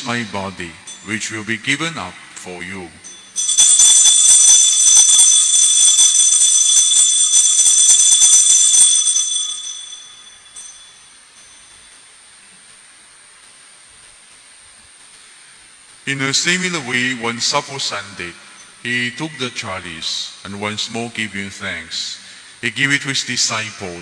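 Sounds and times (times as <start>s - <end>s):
altar bells ringing: 0.0s - 12.3s.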